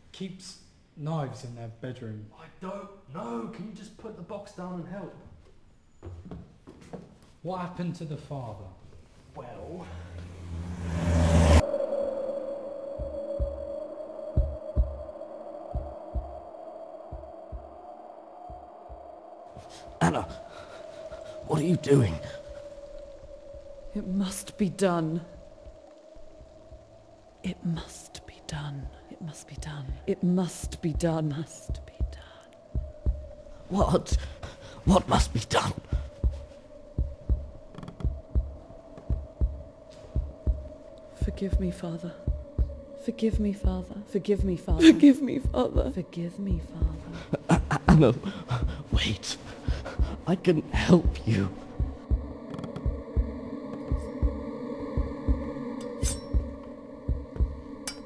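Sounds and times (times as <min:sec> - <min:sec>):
whoosh with low rumble: 0:09.4 - 0:17.8, 0:31.0 - 0:44.8, 0:46.6 - 0:58.0
eerie humming drone: 0:09.4 - 0:58.0
heartbeat thumps: 0:13.0 - 0:16.4, 0:17.1 - 0:17.7, 0:18.4 - 0:20.4, 0:25.4 - 0:58.0.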